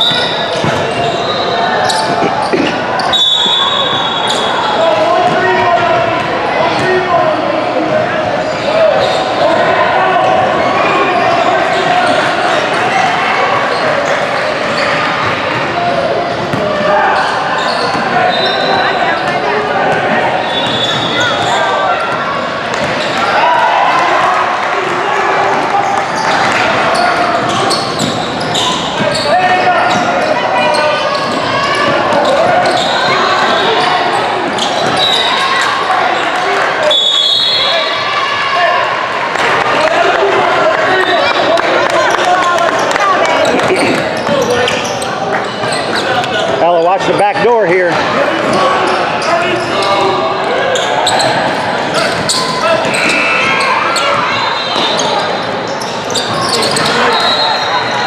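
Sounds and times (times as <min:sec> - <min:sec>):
voices echoing in a hall: 0:00.0 - 0:58.0.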